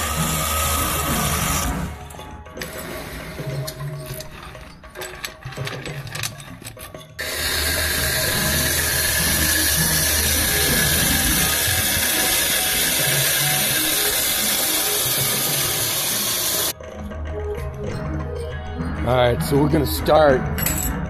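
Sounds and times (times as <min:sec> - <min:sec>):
machinery clicking and clattering: 0:00.0 - 0:16.8.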